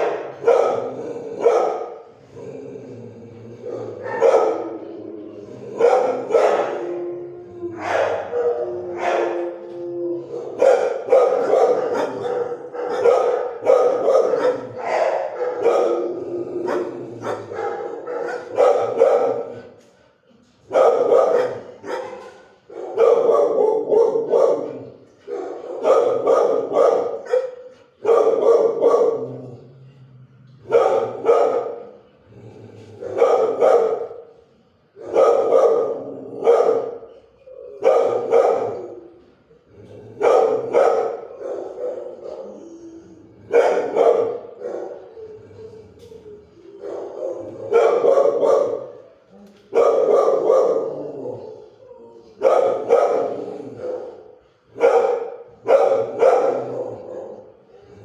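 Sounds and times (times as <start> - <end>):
dogs barking: 0.0 - 2.1, 3.7 - 5.0, 5.7 - 7.1, 7.8 - 9.6, 10.2 - 19.8, 20.7 - 29.5, 30.6 - 32.0, 33.0 - 34.3, 35.0 - 39.1, 40.2 - 42.8, 43.4 - 45.3, 46.6 - 49.1, 49.7 - 51.7, 52.4 - 57.7.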